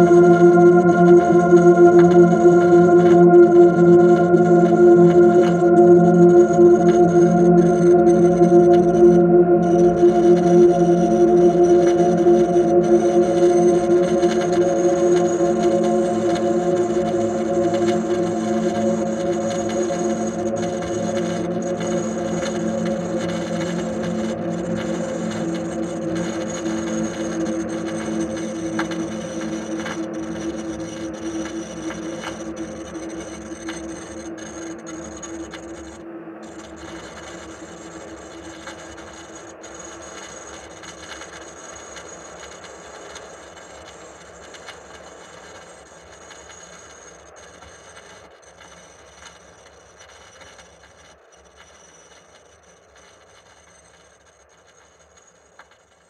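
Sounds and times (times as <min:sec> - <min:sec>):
low drone tones: 0:00.0 - 0:39.1
hissing crackling noise: 0:00.0 - 0:48.1.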